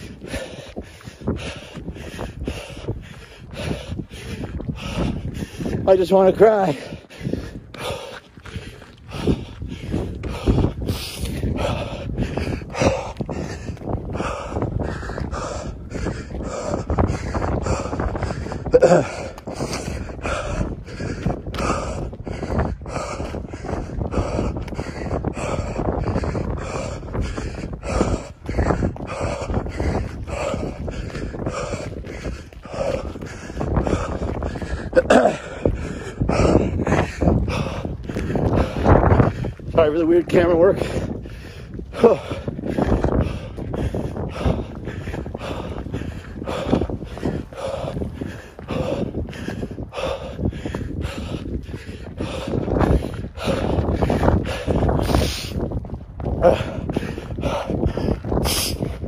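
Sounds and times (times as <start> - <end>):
man breathing hard: 0.0 - 59.0
man panting heavily: 0.0 - 59.0.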